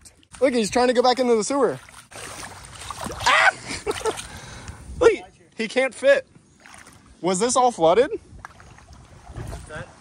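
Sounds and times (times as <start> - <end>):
faint outdoor hiss: 0.0 - 10.0
wind rumble on microphone: 4.5 - 5.3, 7.8 - 10.0.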